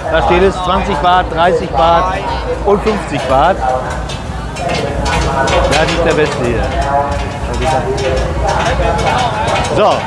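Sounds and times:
man speaking: 0:00.0 - 0:04.0, 0:04.7 - 0:10.0
crowd chatter: 0:00.0 - 0:10.0.

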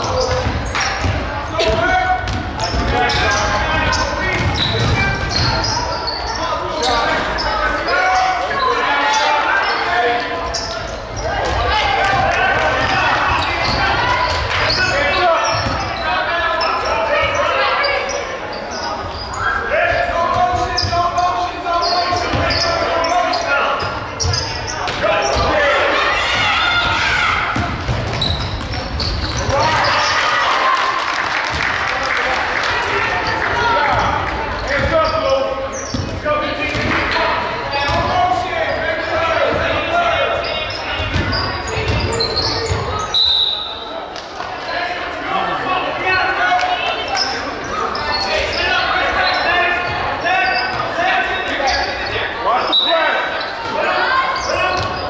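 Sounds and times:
shouts and chatter: 0:00.0 - 0:55.0.

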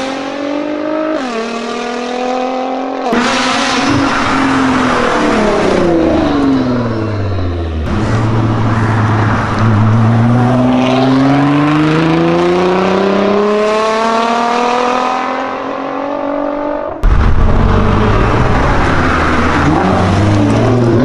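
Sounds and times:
loud car engine accelerating: 0:00.0 - 0:21.0.

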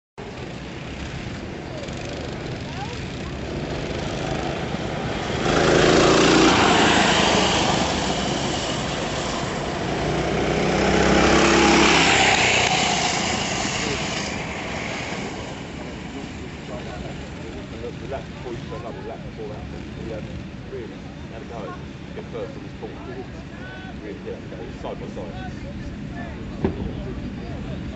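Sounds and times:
go-kart engines buzzing: 0:00.2 - 0:27.9.

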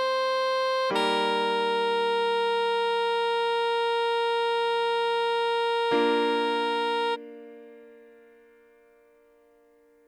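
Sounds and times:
saxophone long note: 0:00.0 - 0:07.5
keyboard chord: 0:00.0 - 0:09.2.

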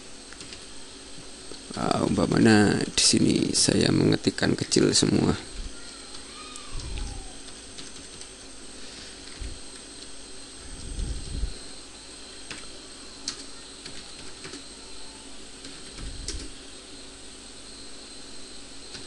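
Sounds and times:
faint steady hum: 0:00.0 - 0:19.0
soft low thumps: 0:10.6 - 0:11.6.

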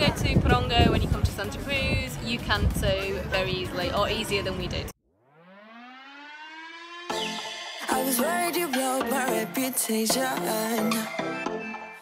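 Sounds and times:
siren-like wail rising in pitch: 0:05.0 - 0:08.7.

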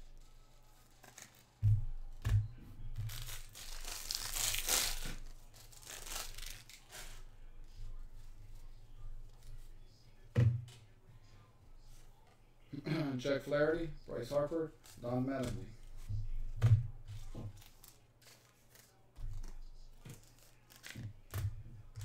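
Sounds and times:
foil wrapper tearing: 0:00.2 - 0:01.6, 0:03.1 - 0:07.2, 0:17.5 - 0:21.1
cards rustling and knocking: 0:00.8 - 0:07.8, 0:14.2 - 0:22.0.

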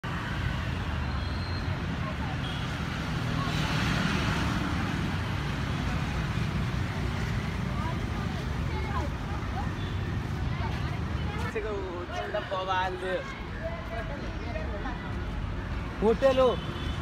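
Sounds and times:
traffic rumble: 0:00.0 - 0:17.0.

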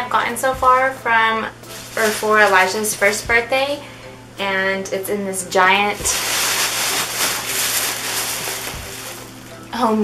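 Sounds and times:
plastic bag rustling: 0:01.7 - 0:03.2, 0:05.8 - 0:09.8.

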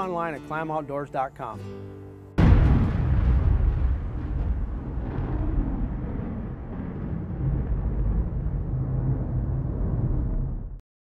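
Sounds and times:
deep steady rumble: 0:02.4 - 0:10.8.

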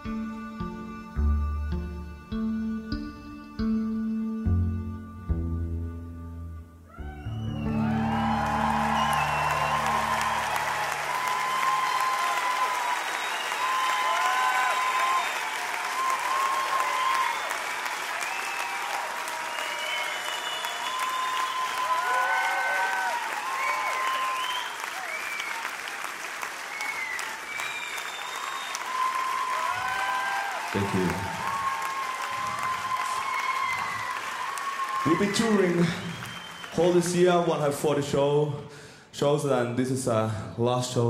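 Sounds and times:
amplified cellos low chord: 0:00.0 - 0:11.5
crowd applauding and cheering: 0:06.9 - 0:37.8
crowd whistling: 0:07.0 - 0:37.3.

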